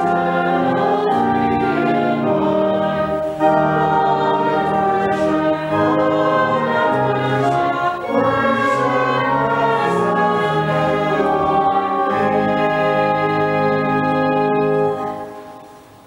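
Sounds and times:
congregation singing a hymn: 0.0s - 15.8s
church organ chords: 0.0s - 16.0s.

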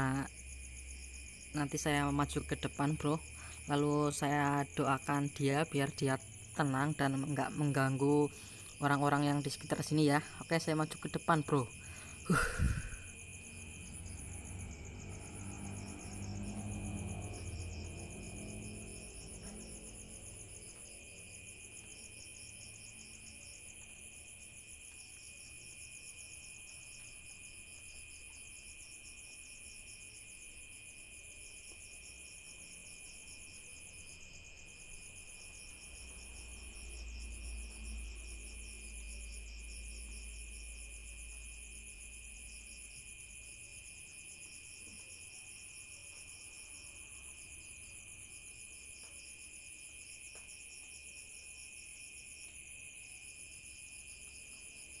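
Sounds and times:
crickets trilling: 0.0s - 55.0s.

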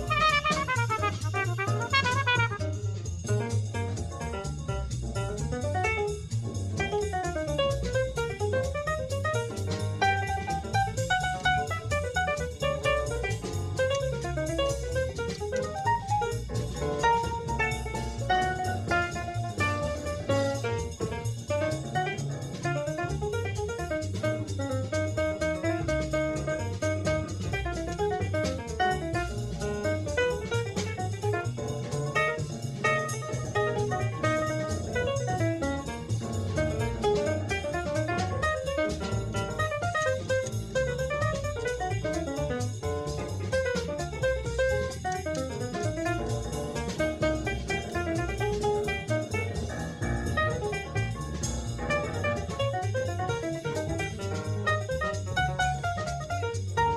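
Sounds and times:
cool jazz quartet playing: 0.0s - 56.9s.

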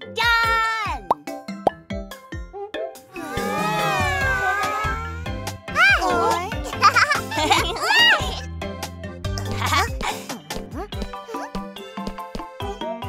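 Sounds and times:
cartoon background music: 0.0s - 13.0s
cartoon characters' high calls: 3.2s - 5.2s.

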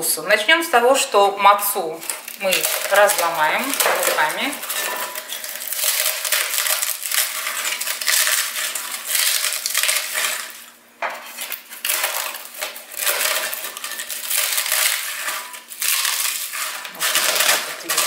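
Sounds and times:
crackers snapping and crunching: 2.0s - 18.0s
fragments rattling into glass bowl: 2.0s - 18.0s.

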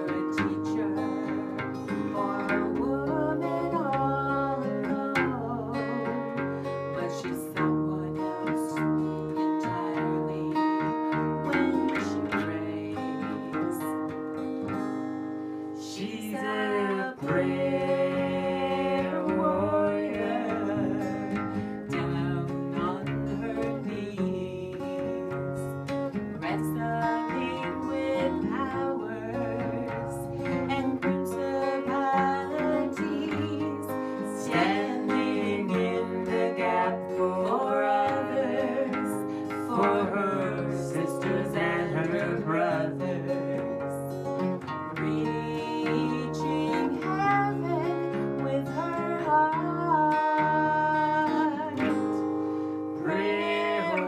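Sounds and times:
woman singing: 0.0s - 14.8s, 15.7s - 54.0s
acoustic guitars playing: 0.0s - 54.0s.

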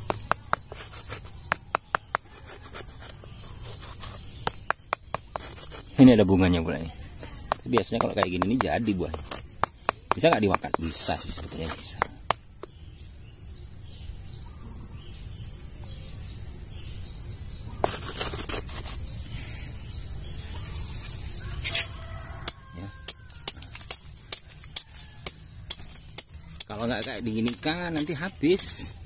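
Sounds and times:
machete chopping wood: 0.0s - 2.3s, 7.4s - 12.7s.

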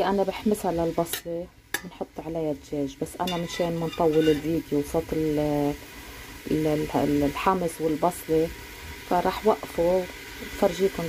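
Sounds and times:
woman speaking: 0.0s - 5.8s, 6.5s - 8.5s, 9.1s - 11.0s
onion frying in oil: 0.0s - 11.0s.

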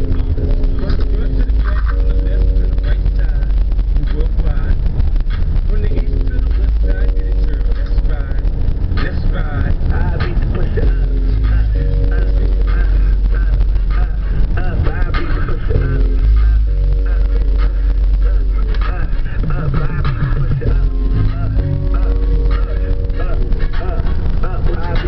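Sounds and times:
hip-hop on car stereo: 0.0s - 25.0s
rapping voice: 0.0s - 25.0s.

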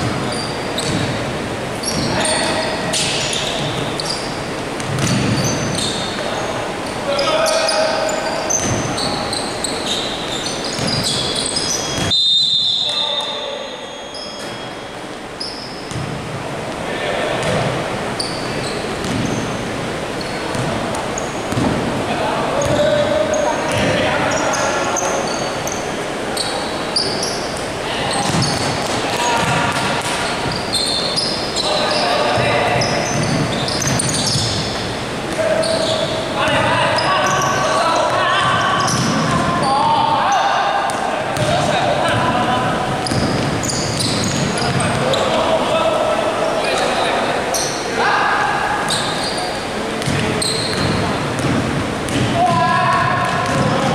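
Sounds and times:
basketball bouncing: 0.0s - 1.2s, 4.8s - 6.0s, 8.6s - 9.0s, 10.7s - 11.2s, 11.9s - 12.1s, 15.9s - 16.2s, 17.4s - 17.8s, 19.0s - 19.4s, 20.5s - 21.9s, 23.7s - 24.0s, 28.2s - 30.6s, 32.3s - 34.7s, 38.1s - 39.5s, 40.9s - 45.0s, 50.0s - 53.9s
sneakers squeaking: 0.0s - 53.9s.

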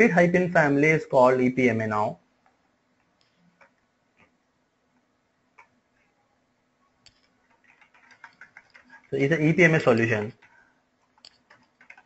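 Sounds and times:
computer keyboard typing: 3.2s - 3.8s, 7.0s - 12.0s.

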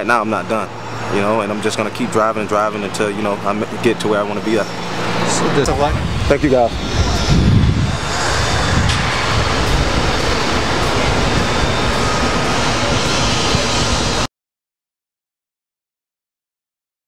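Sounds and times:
loud rushing outdoor rumble: 0.0s - 14.3s.

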